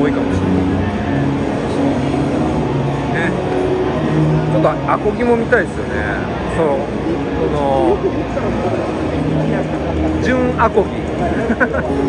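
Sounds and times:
busy hall noise: 0.0 - 12.0
electric guitar sustained notes: 0.0 - 12.0.

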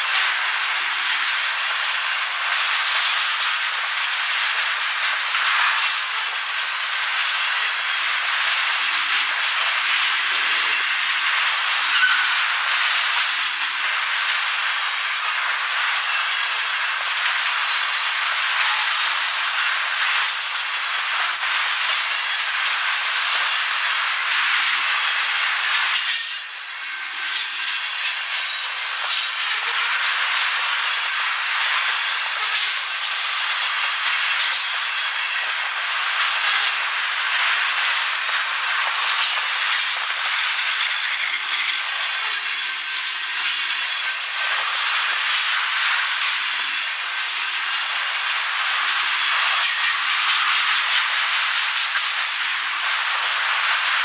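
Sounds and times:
freight train wheels rolling on rails: 0.0 - 54.0
train clicks and clanks: 0.0 - 54.0.

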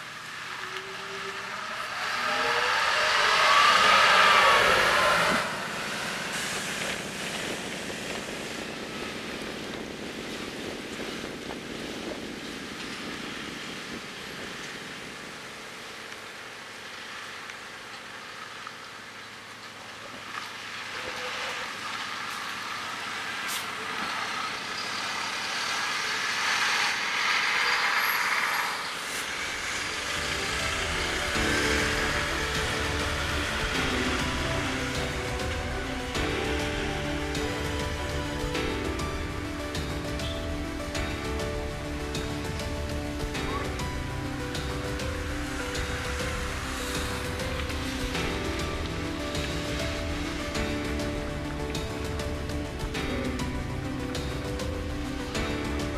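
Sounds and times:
diesel bus driving past: 0.0 - 55.9
diesel coach passing: 0.0 - 55.9.

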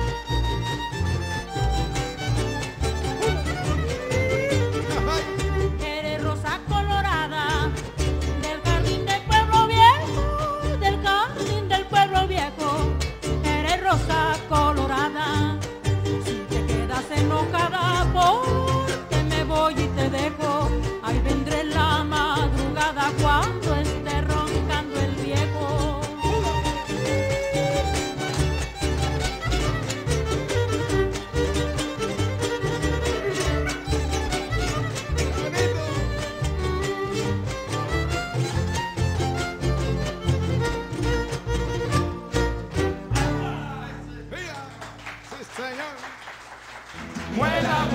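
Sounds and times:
violin melody: 0.0 - 43.6
strummed guitar: 0.0 - 45.0, 47.0 - 47.9
acoustic folk string band: 0.0 - 45.8, 46.4 - 47.9
woman singing: 5.4 - 28.0.

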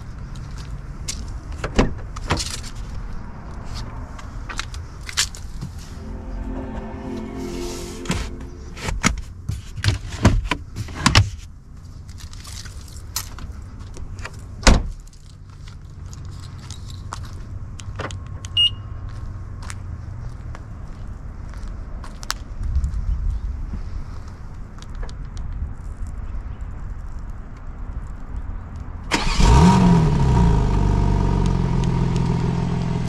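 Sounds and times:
steady low rumble: 2.9 - 9.6
short high beep: 5.9 - 9.1.

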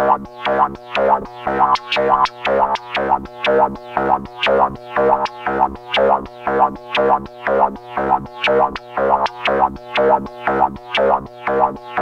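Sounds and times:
analogue synthesizer loop: 0.0 - 12.0.

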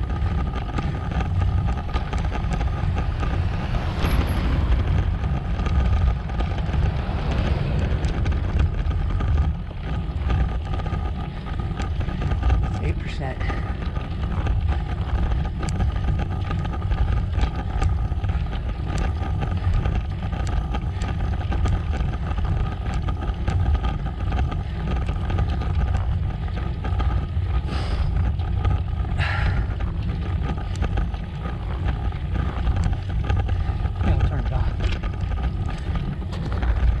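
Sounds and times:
wind rushing over microphone: 0.0 - 37.0.

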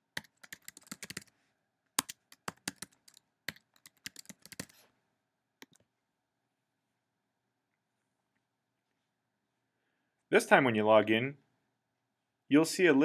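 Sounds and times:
typing on computer keyboard: 0.1 - 1.3, 2.0 - 4.8, 5.6 - 5.8.

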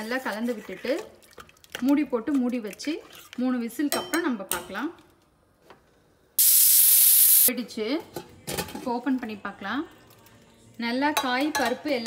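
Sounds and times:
pressure cooker whistle hissing: 6.4 - 7.5.

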